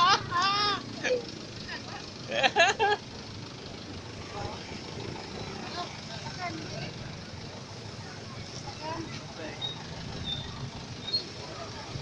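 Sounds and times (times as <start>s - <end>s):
rumble of vehicles: 0.0s - 12.0s
distant voices talking: 3.5s - 12.0s.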